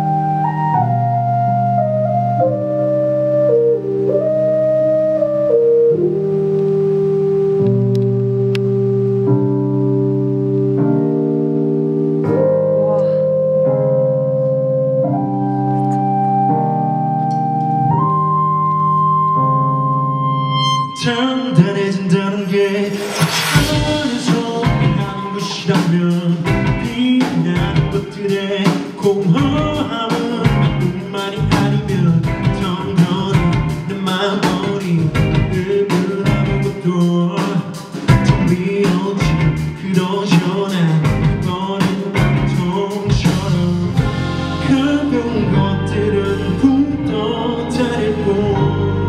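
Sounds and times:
keyboard playing organ-like chords: 0.0 - 22.4, 29.4 - 36.8, 41.0 - 49.0
live band with male singer: 20.8 - 49.0.

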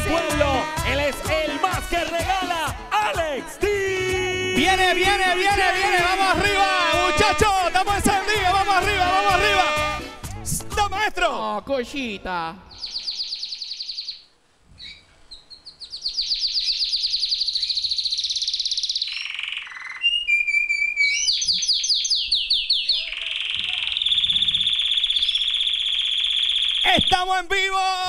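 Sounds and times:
high-pitched siren-like sweeps: 23.5 - 26.9.

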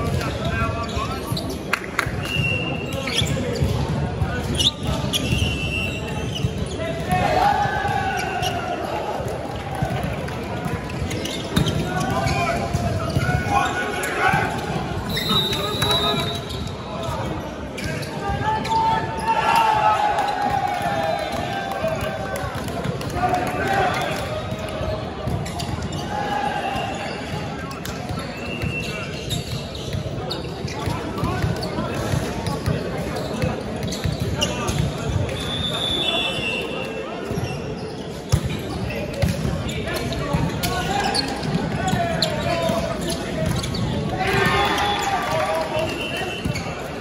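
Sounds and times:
sneaker squeaks: 0.0 - 7.2, 7.8 - 9.0, 10.6 - 20.4, 24.3 - 47.0
players shouting: 6.9 - 10.1, 11.6 - 16.4, 18.0 - 24.5, 40.4 - 47.0.

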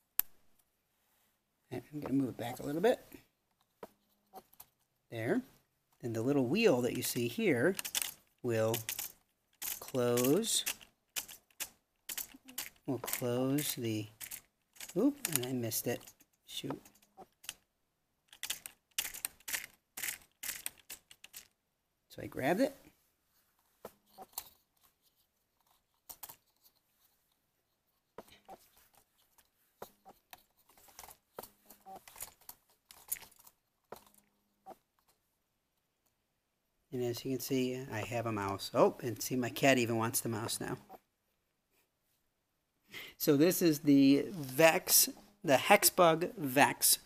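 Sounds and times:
plastic gears clicking: 7.7 - 17.7, 18.3 - 21.6, 29.9 - 34.2.

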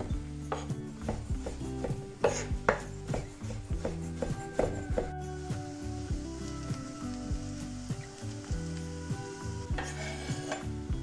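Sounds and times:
knife chopping on wooden board: 0.0 - 5.1.

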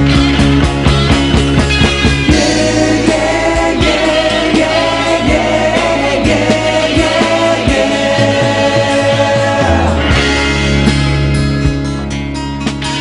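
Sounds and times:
drum hits: 0.0 - 12.0
hard rock band: 0.0 - 13.0
pulsing bass line: 0.0 - 13.0
choir-like vocal harmonies: 2.3 - 10.9.

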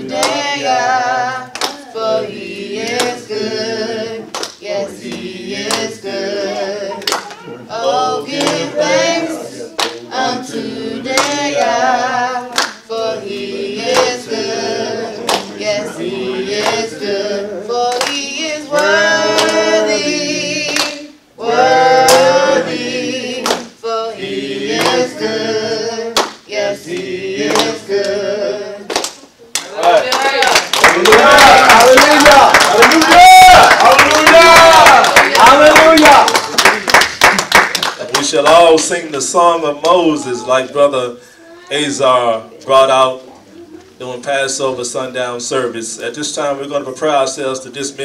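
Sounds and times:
hand claps: 0.1 - 0.4, 1.5 - 1.8, 2.9 - 3.2, 4.3 - 5.9, 7.0 - 7.4, 11.1 - 11.4, 12.5 - 12.8, 13.9 - 14.2, 15.2 - 15.5, 18.8 - 19.6, 23.4 - 23.7, 24.8 - 25.1, 26.2 - 27.8, 28.9 - 38.9.

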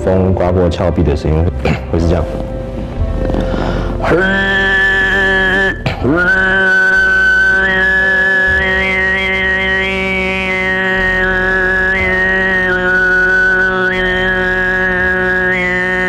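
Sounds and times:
overtone throat singing: 1.5 - 16.0.

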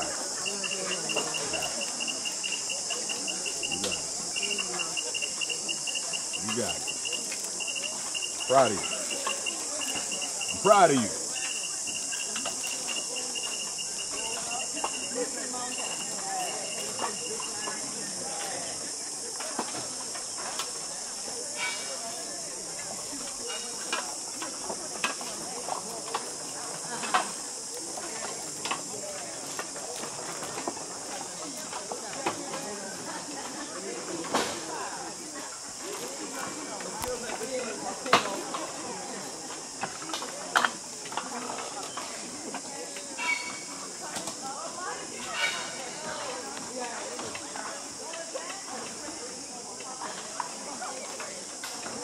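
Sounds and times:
faint voices: 0.0 - 52.0
insect chorus hiss: 0.0 - 52.0.

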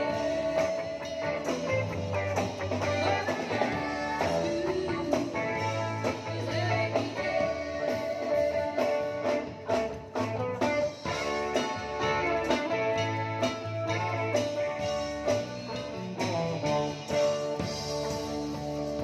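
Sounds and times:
live band playing: 0.0 - 19.0.

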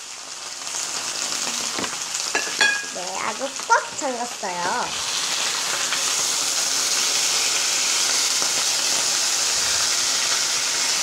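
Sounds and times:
steady hiss: 3.0 - 11.0.

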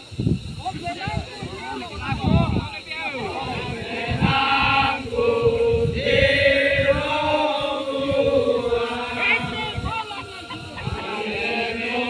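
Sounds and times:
crowd noise: 0.7 - 12.0
many voices chanting: 3.1 - 12.0.

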